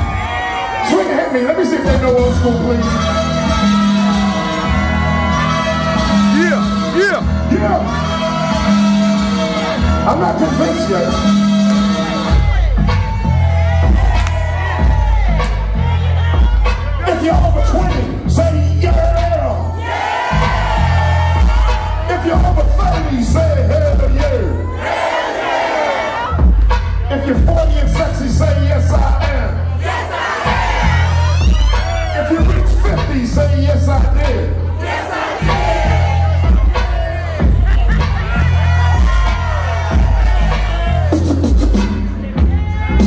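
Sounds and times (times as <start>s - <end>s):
crowd cheering: 0.0s - 18.0s, 19.4s - 26.8s, 29.0s - 43.0s
hip-hop music over loudspeakers: 0.0s - 43.0s.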